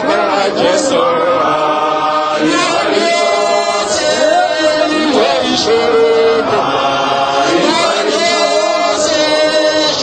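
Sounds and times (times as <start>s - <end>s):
choir singing gospel song: 0.0s - 10.0s.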